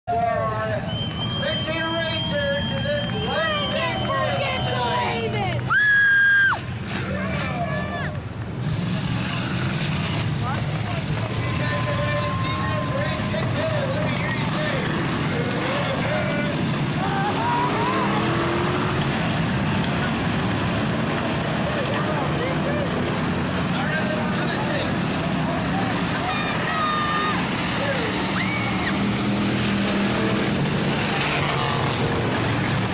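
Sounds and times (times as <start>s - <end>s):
indistinct crowd voices: 0.1s - 32.9s
racing car engines: 0.1s - 32.9s.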